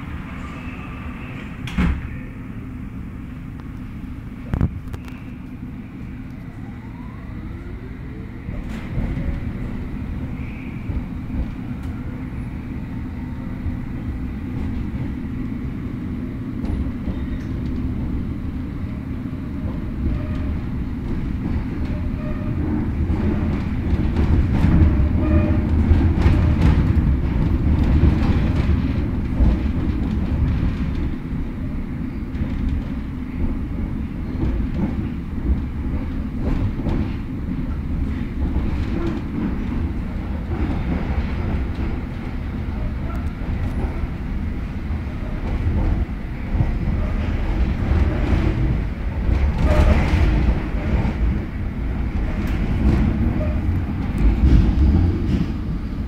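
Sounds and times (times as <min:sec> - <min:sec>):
train wheels rumbling: 0:00.0 - 0:56.0
wheels clicking over rail joints: 0:19.4 - 0:56.0.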